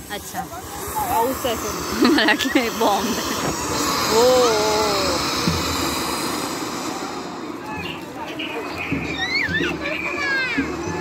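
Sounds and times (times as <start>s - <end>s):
firework fountain hissing: 0.0s - 11.0s.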